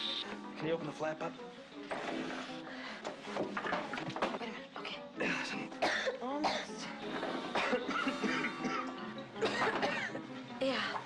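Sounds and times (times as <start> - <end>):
background music: 0.0 - 11.0
women coughing: 5.2 - 10.2.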